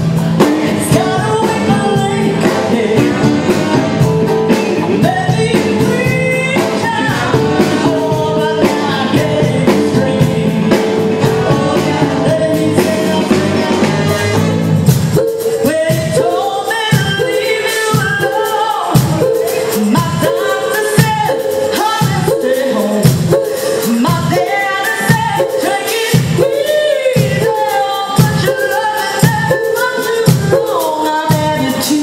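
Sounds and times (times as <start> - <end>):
live band playing soul-pop: 0.0 - 32.0
person singing: 0.0 - 32.0.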